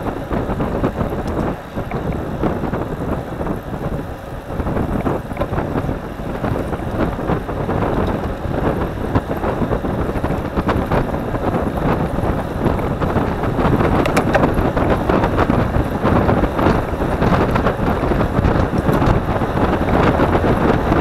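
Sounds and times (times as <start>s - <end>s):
tyre and road noise: 0.0s - 21.0s
wind buffeting microphone: 0.0s - 21.0s
small clicks and rattles: 13.8s - 15.9s.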